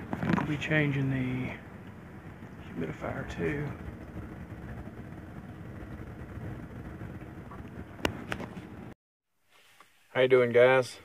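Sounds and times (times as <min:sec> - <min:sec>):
furnace air handler humming: 0:00.0 - 0:09.0.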